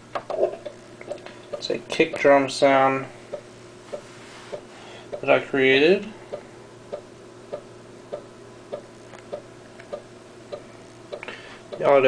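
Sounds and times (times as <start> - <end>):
floppy disk drive running: 0.0 - 12.0.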